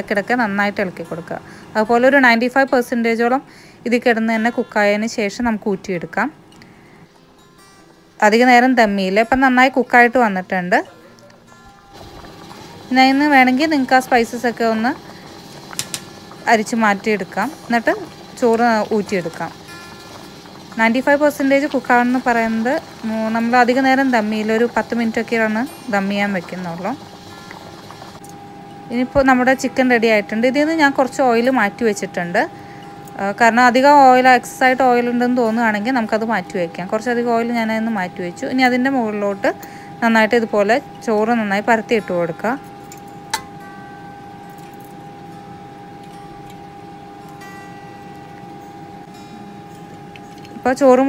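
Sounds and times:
woman talking: 0.0s - 6.4s, 8.2s - 10.9s, 12.8s - 15.0s, 16.4s - 19.6s, 20.8s - 27.0s, 28.9s - 32.6s, 33.2s - 42.6s, 50.5s - 51.0s
steady background hum: 0.0s - 51.0s
faint high ringing tones: 6.4s - 51.0s.

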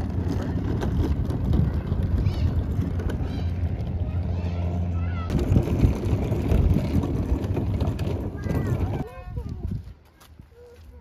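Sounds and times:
wind buffeting microphone: 0.0s - 4.2s, 5.3s - 10.5s.

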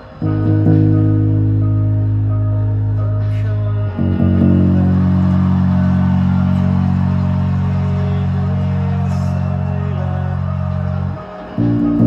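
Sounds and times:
electric bass guitar: 0.0s - 12.0s.

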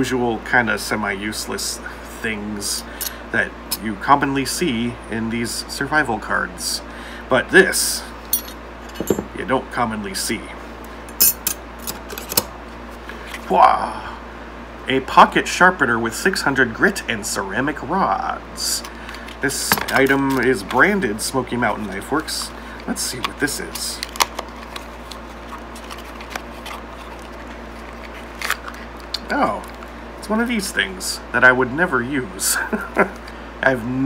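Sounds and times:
cardboard and plastic packaging rustling: 19.0s - 30.0s
plastic crinkle: 23.2s - 29.9s.

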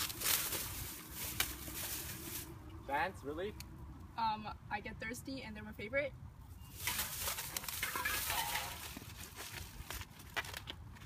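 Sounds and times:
plastic bag rustling: 0.0s - 2.6s, 6.8s - 10.0s.

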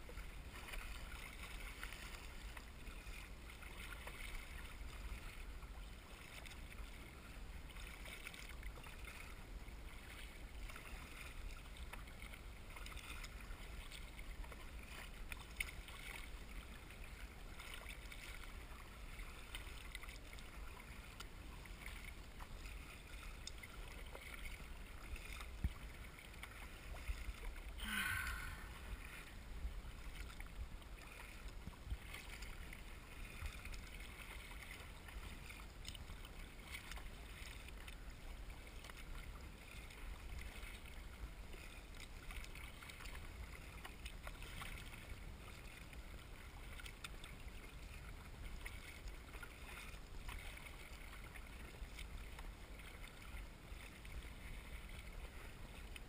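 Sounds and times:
water splashing against kayak: 0.0s - 56.0s.

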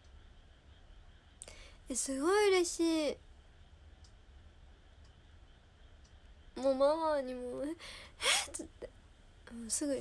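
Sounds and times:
woman's voice: 1.9s - 3.2s, 6.6s - 8.9s, 9.5s - 10.0s.

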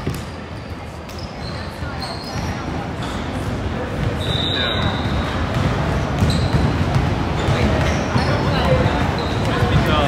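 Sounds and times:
sneaker squeaks: 0.0s - 3.4s, 4.0s - 10.0s.

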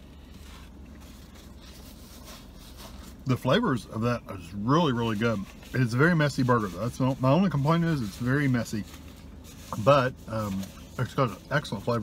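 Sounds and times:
low steady hum: 0.0s - 12.0s
paper napkin rustling: 0.2s - 12.0s.

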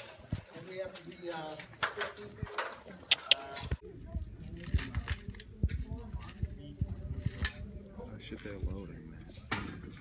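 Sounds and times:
indistinct chatter: 1.6s - 10.0s.

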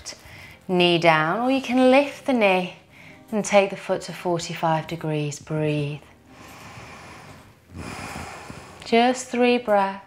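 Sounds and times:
woman breathing deeply: 6.1s - 9.0s.

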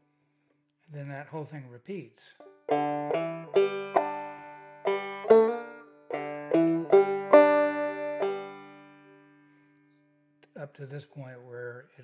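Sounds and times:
banjo plucking: 2.4s - 9.6s.

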